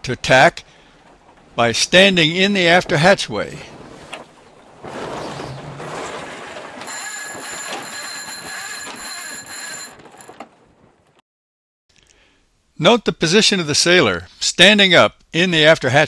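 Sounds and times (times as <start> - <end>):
winch and line rasping: 5.0 - 10.6
ringing whine: 6.9 - 10.3.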